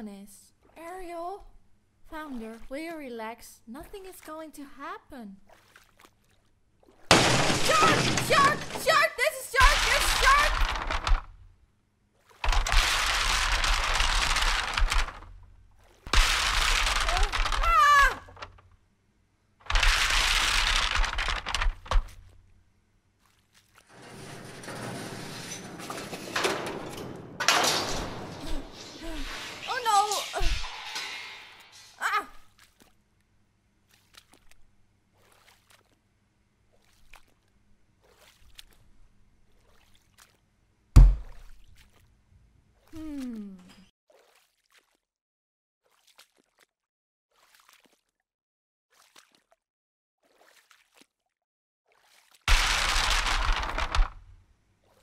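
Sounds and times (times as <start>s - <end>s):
crashing: 7.1s - 11.4s, 12.5s - 15.4s, 16.1s - 18.6s, 23.9s - 32.0s
screaming: 17.5s - 18.3s
heavy thud: 41.0s - 41.4s.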